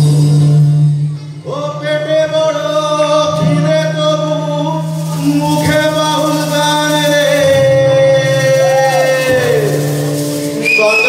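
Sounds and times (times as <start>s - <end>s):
live band music: 4.6s - 11.0s
high whistle-like tone: 10.5s - 11.0s.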